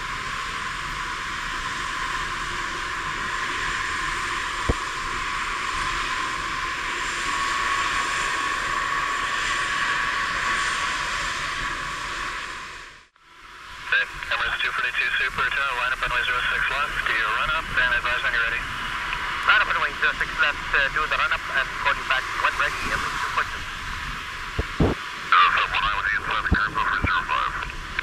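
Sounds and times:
jet engines rushing: 0.0 - 28.0.

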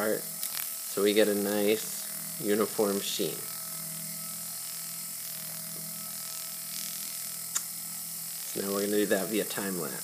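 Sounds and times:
rotary tool sanding hum: 0.0 - 10.0.

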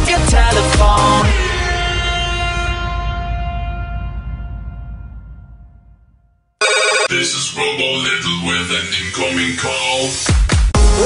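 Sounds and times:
telephone ringtone: 6.6 - 7.1.

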